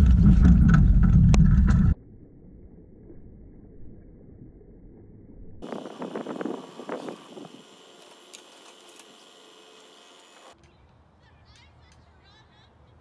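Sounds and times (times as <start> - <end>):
wind hiss: 5.6 - 10.6
quiet outdoor ambience: 5.6 - 13.0.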